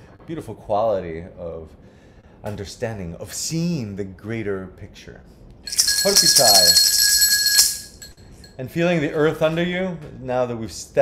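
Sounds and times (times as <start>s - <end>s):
gourd rattle shaken rapidly: 5.7s - 8.1s
thin steady ringing tone: 5.7s - 8.2s.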